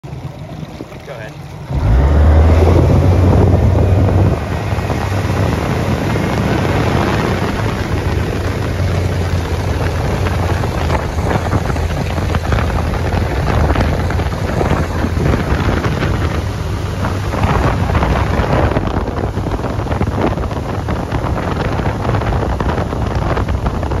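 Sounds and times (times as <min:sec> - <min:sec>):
outboard motor droning: 0:00.0 - 0:24.0
rushing water: 0:00.0 - 0:24.0
wind buffeting microphone: 0:00.0 - 0:24.0.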